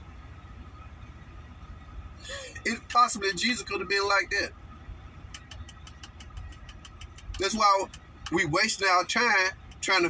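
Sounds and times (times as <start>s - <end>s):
vehicle rumble: 0.0s - 10.0s
rapid even ticking: 5.3s - 10.0s.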